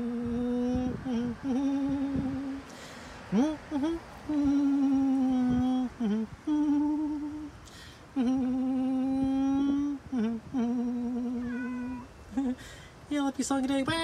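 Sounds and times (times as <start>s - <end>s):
woman humming a slow melody: 0.0s - 12.6s.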